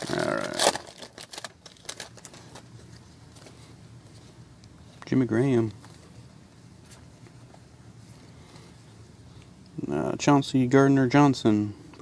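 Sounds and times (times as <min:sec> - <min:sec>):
foil wrapper crackling: 0:00.0 - 0:03.5.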